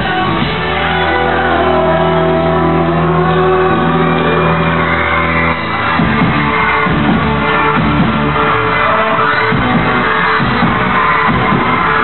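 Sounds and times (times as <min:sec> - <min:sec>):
rock band playing loudly: 0:00.0 - 0:12.0.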